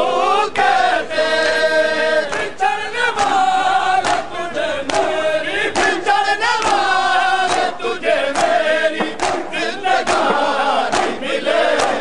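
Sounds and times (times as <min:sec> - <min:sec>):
men chanting in unison: 0:00.0 - 0:12.0
hands striking bare chests: 0:09.0 - 0:09.4, 0:10.1 - 0:11.1.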